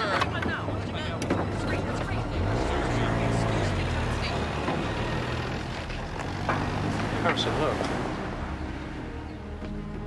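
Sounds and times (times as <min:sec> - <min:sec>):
crowd voices: 0:00.0 - 0:06.2
truck engine running: 0:00.0 - 0:10.0.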